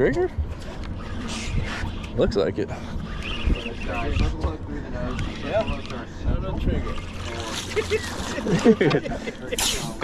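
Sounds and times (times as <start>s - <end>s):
people laughing and talking: 2.7s - 10.0s.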